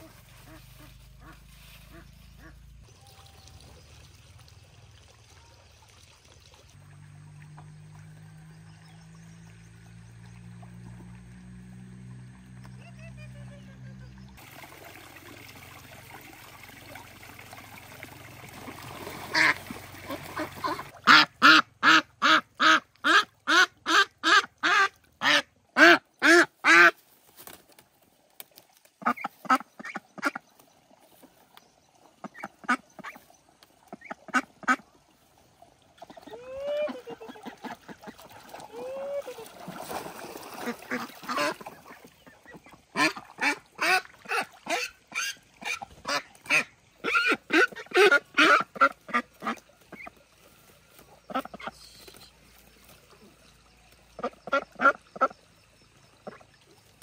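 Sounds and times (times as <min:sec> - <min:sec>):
ducks quacking: 0:00.0 - 0:03.2, 0:19.2 - 0:27.0, 0:29.0 - 0:30.4, 0:33.9 - 0:34.8, 0:36.0 - 0:39.5, 0:40.5 - 0:50.2, 0:51.2 - 0:52.3, 0:54.1 - 0:55.4.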